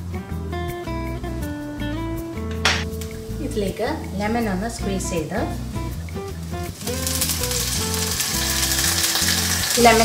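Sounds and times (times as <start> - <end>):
background music with bass: 0.0 - 10.0
oil sizzling in a pan: 4.8 - 10.0.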